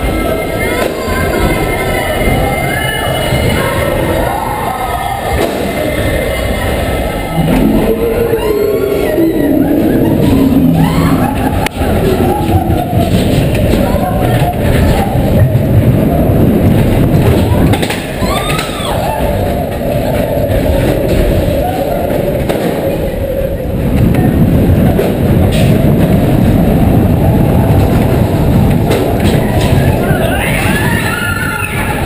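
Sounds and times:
coaster wheels rumbling on track: 0:00.0 - 0:32.0.

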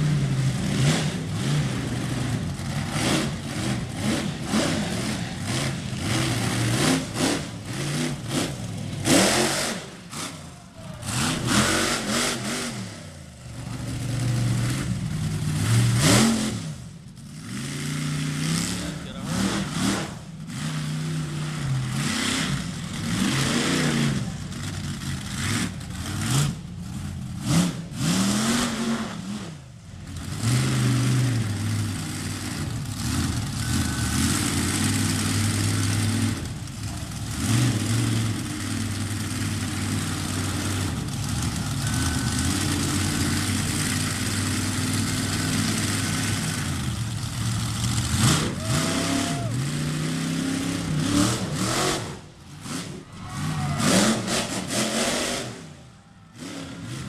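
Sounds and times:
monster truck engine revving: 0:00.0 - 0:57.0.

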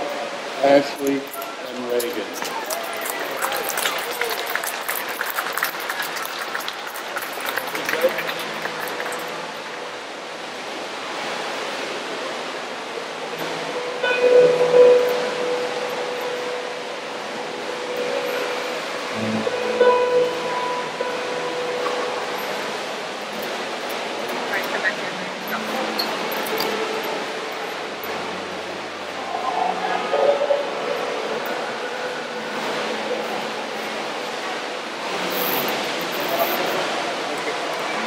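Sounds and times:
guests clapping: 0:02.0 - 0:09.6
music with long held notes: 0:13.9 - 0:22.8
low bass line: 0:19.0 - 0:22.2.

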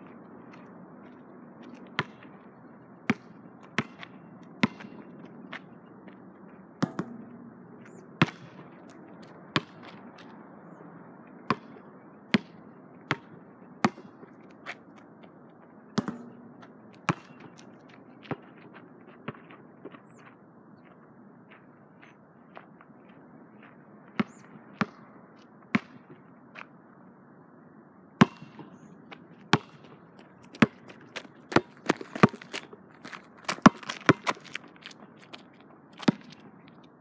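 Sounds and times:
basketball bouncing on asphalt: 0:00.5 - 0:10.4, 0:11.4 - 0:15.0, 0:15.9 - 0:20.1, 0:24.1 - 0:26.3, 0:28.2 - 0:37.0.

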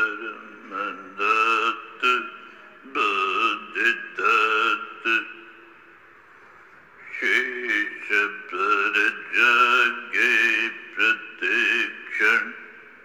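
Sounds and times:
man chanting a mantra: 0:00.0 - 0:05.6, 0:07.0 - 0:12.9.

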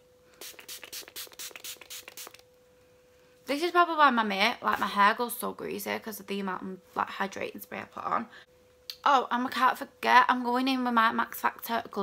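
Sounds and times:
pump spray bottle hissing: 0:00.4 - 0:02.4.

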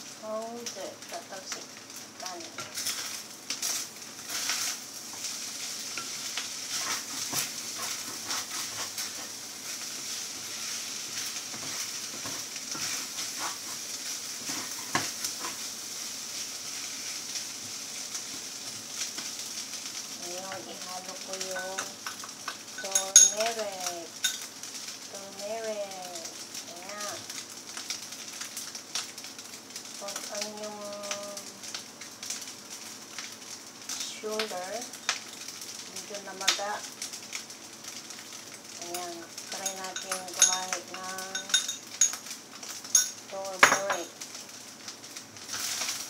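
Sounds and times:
rice sizzling in a pan: 0:00.0 - 0:46.0
metal spoon clinking on ceramic bowl: 0:22.8 - 0:23.4, 0:39.6 - 0:42.2, 0:43.0 - 0:44.1
utensils knocking: 0:39.6 - 0:42.2
spoon clinking on ceramic bowl: 0:41.3 - 0:42.2.

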